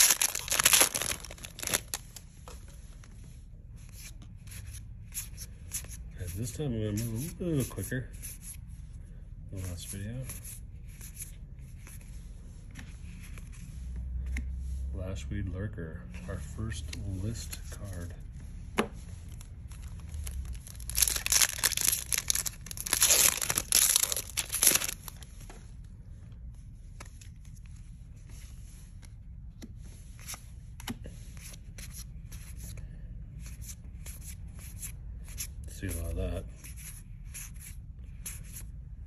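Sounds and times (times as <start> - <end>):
foil wrapper tearing and crinkling: 0.0 - 2.0, 20.0 - 25.1
cards being handled: 0.0 - 3.2, 16.6 - 25.9.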